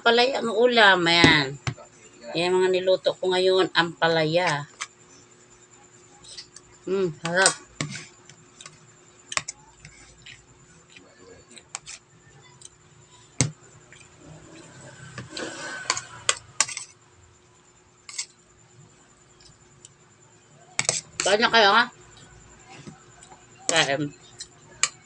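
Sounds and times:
metal spoon scraping a plate: 7.8s - 10.4s, 11.5s - 12.0s, 14.0s - 17.0s, 18.0s - 18.4s, 20.8s - 21.5s.

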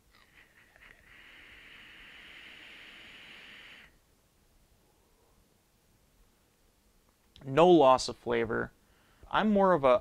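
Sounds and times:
vapor hiss: 0.0s - 4.1s
vape coil crackles: 0.2s - 4.0s.

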